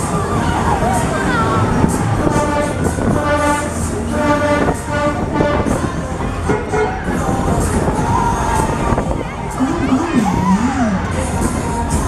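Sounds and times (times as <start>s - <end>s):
fairground ride cars rumbling: 0.0s - 12.0s.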